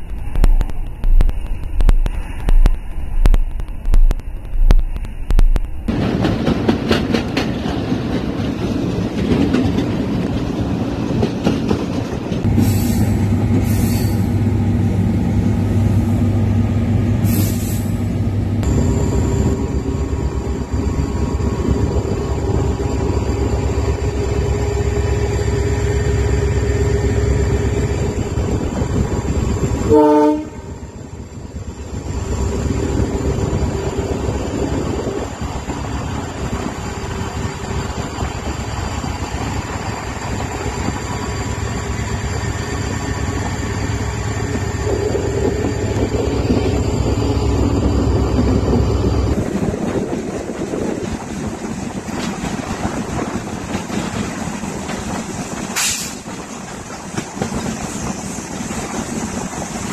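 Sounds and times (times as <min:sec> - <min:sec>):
wheels clicking over rails: 0:00.0 - 0:12.5
train rumbling: 0:00.0 - 0:59.9.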